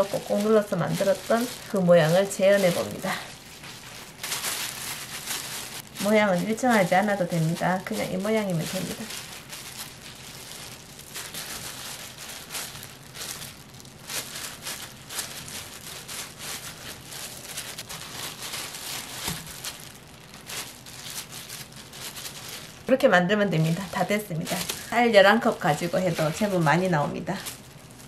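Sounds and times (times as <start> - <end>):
plastic wrap crinkling: 0.0 - 28.0.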